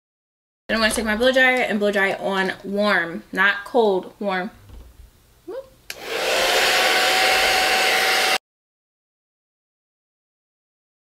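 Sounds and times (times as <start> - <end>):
hair dryer switch click: 5.9 - 6.2
hair dryer blowing: 5.9 - 8.4.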